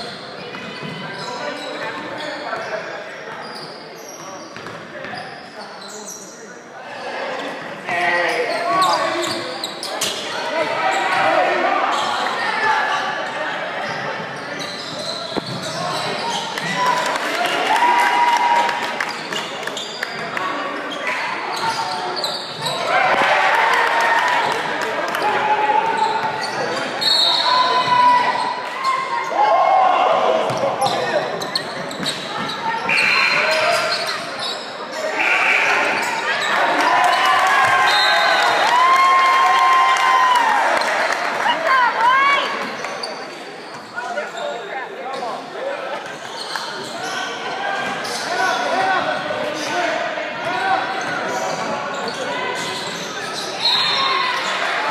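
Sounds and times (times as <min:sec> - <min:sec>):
voices calling out: 0:25.1 - 0:38.6.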